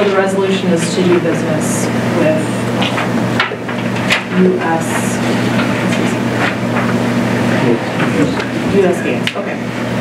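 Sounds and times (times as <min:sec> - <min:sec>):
faint murmured voices: 0:00.0 - 0:10.0
low room hum: 0:00.0 - 0:10.0.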